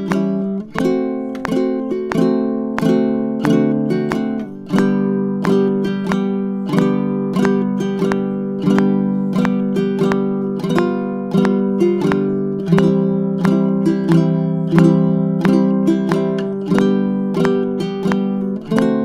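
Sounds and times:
ukulele strumming waltz: 0:00.0 - 0:19.0.

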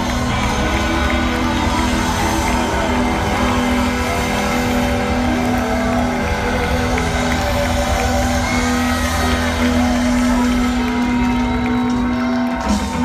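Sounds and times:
distorted electric guitar solo: 0:00.0 - 0:13.0
live rock band playing: 0:00.0 - 0:13.0.

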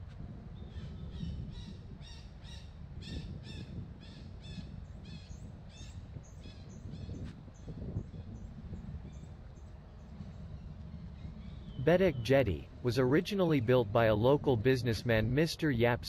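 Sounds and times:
birds calling: 0:00.6 - 0:16.0.

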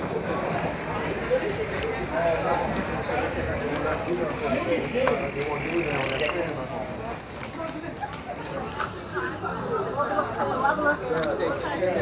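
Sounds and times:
shoppers and staff talking: 0:00.0 - 0:12.0.

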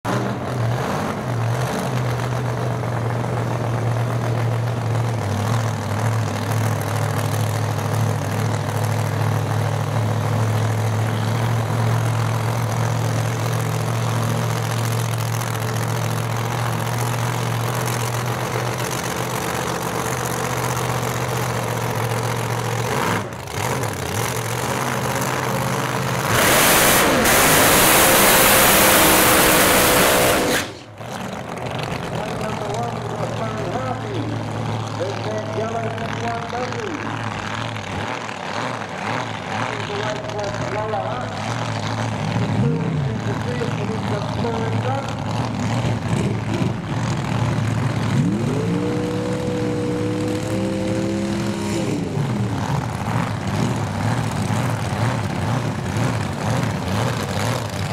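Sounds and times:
engine revving in burnout: 0:00.0 - 0:02.2, 0:22.5 - 0:34.2, 0:36.2 - 0:57.9
car engine idling: 0:00.1 - 0:57.9.

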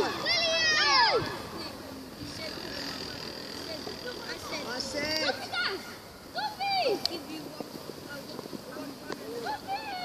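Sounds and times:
children shouting in the distance: 0:00.0 - 0:07.1.

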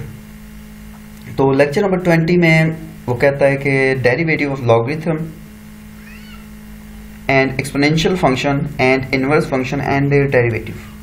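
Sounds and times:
steady low hum: 0:00.0 - 0:11.0
faint rising and falling call: 0:05.8 - 0:07.2.

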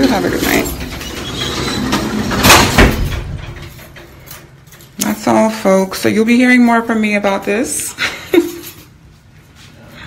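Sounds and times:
metal scissor gate rattling shut: 0:00.0 - 0:04.5.

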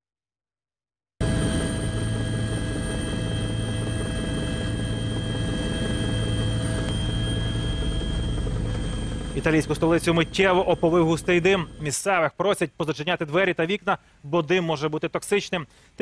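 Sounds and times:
helicopter engine and rotor: 0:01.2 - 0:12.0.

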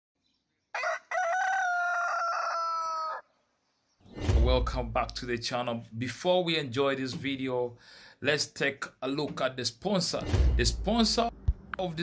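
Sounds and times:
rooster crowing: 0:00.7 - 0:03.3.

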